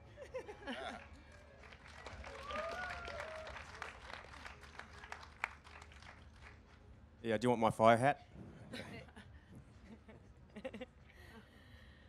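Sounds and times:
audience applauding: 0:00.8 - 0:06.8.

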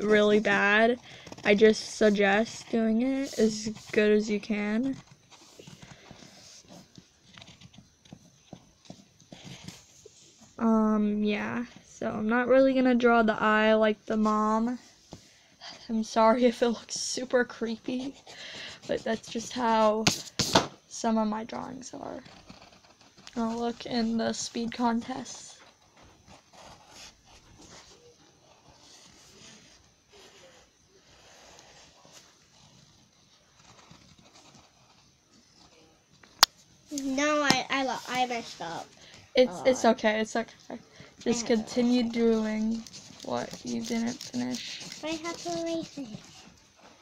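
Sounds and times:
pencil scratching on paper: 0:00.0 - 0:07.8, 0:16.4 - 0:20.6, 0:22.0 - 0:35.8, 0:41.2 - 0:46.6.

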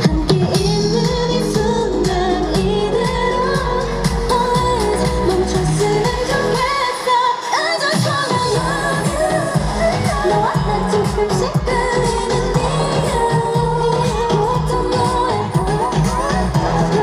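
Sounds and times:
dance-pop backing track: 0:00.0 - 0:17.0
woman singing: 0:00.0 - 0:17.0.

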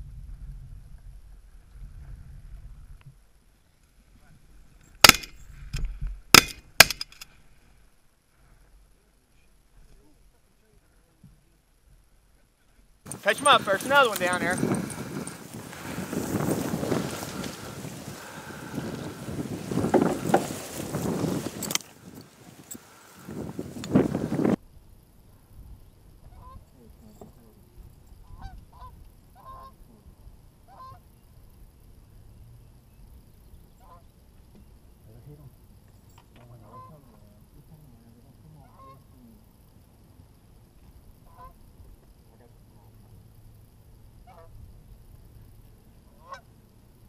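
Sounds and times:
geese honking: 0:13.1 - 0:19.5, 0:28.3 - 0:29.8, 0:30.7 - 0:31.0, 0:33.8 - 0:34.0, 0:36.6 - 0:37.1, 0:38.6 - 0:39.1, 0:41.3 - 0:41.6, 0:44.2 - 0:44.5, 0:46.1 - 0:46.5.

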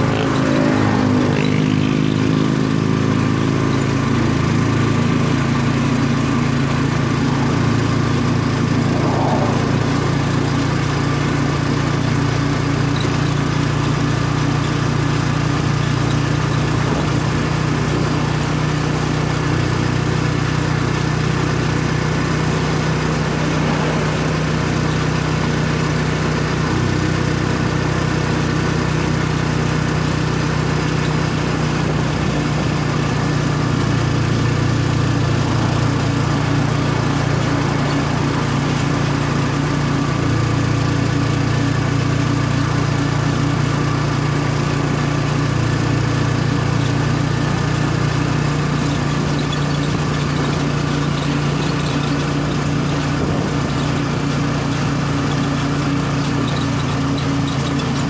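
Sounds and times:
small vehicle engine running: 0:00.0 - 0:58.0.

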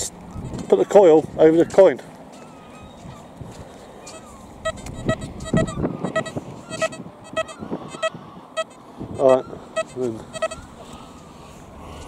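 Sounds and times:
metal detector beeps: 0:04.1 - 0:10.7.

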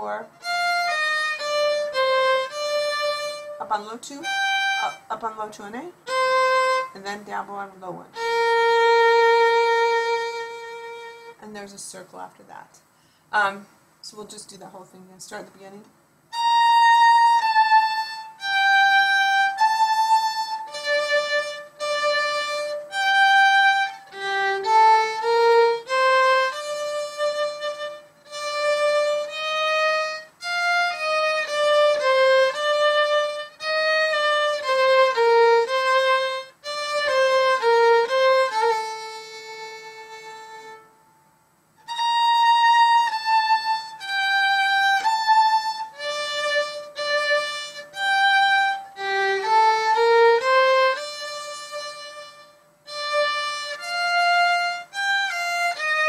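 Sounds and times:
solo violin melody: 0:00.0 - 0:11.4, 0:16.3 - 0:56.0.

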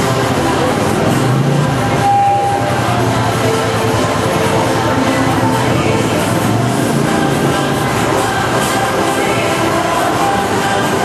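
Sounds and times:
passing vehicles: 0:00.0 - 0:11.0
street crowd noise: 0:00.0 - 0:11.0.

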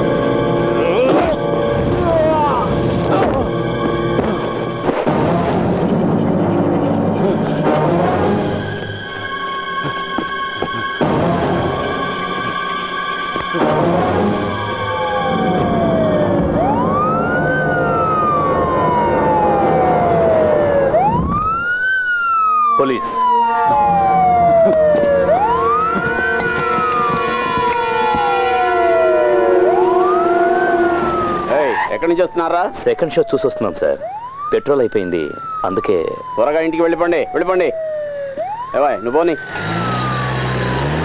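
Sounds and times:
film music: 0:00.0 - 0:41.0
siren wailing: 0:00.0 - 0:41.0.

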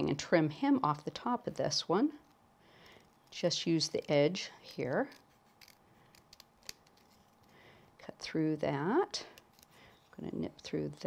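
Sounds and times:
snips cutting card: 0:04.6 - 0:07.2.

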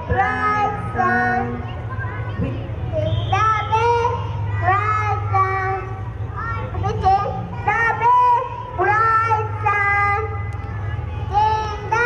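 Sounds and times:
young children singing: 0:00.0 - 0:06.0, 0:06.8 - 0:10.4.

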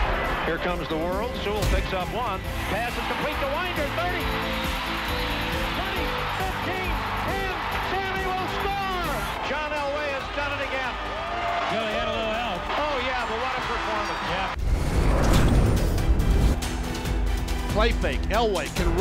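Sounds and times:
stadium crowd cheering: 0:00.0 - 0:01.3, 0:01.9 - 0:14.6
music: 0:00.0 - 0:19.0
excited commentator talking: 0:05.6 - 0:11.0
transition hit with whoosh: 0:14.6 - 0:16.6.

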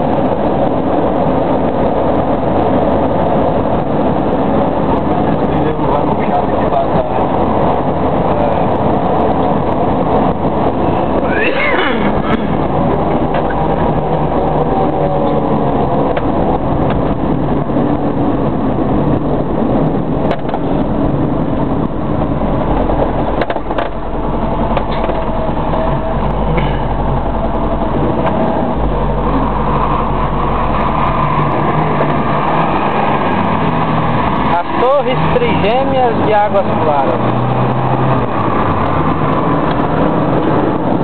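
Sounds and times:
car engine and road rumble: 0:00.0 - 0:41.0.

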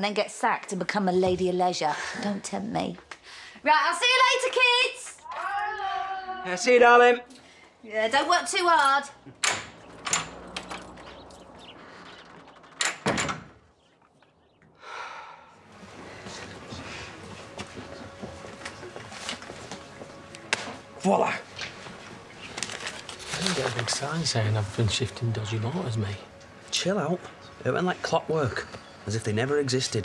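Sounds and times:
front door opening and shutting: 0:09.2 - 0:13.8
cafe background noise: 0:15.6 - 0:30.0.

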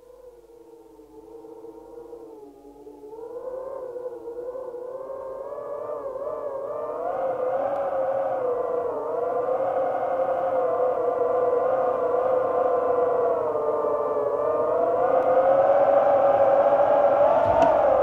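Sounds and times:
wavering pitched drone: 0:01.2 - 0:18.0.

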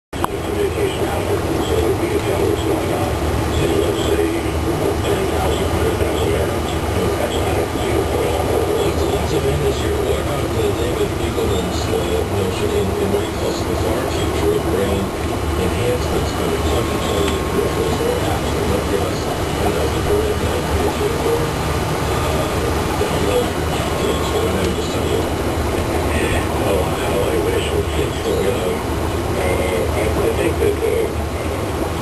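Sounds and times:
air pumps and filters humming: 0:00.2 - 0:32.0.

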